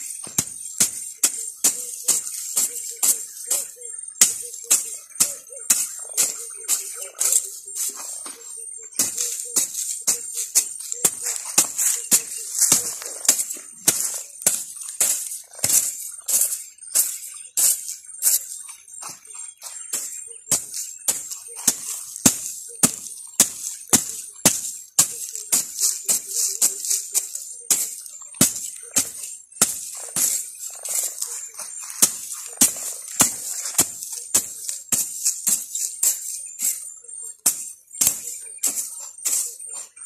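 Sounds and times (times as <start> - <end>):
hoe scraping dry soil: 5.7 - 40.0.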